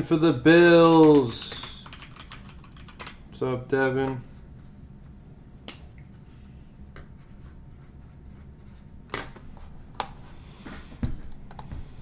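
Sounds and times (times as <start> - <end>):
typing on computer keyboard: 1.5 - 3.2.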